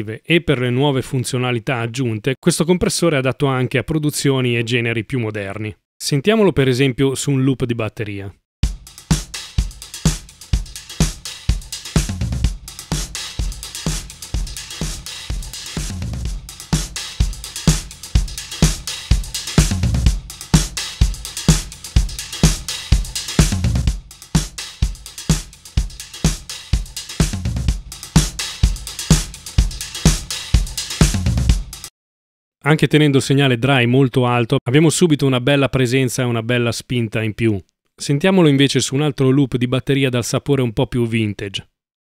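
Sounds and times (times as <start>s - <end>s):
drum kit beat: 8.6s - 31.9s.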